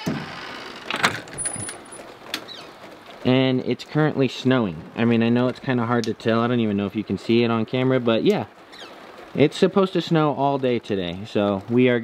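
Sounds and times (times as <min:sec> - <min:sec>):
door squeak: 0:00.0 - 0:02.7.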